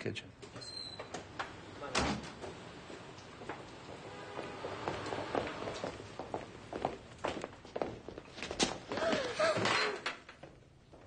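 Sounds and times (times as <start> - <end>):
footsteps on hard floor: 3.4 - 9.7.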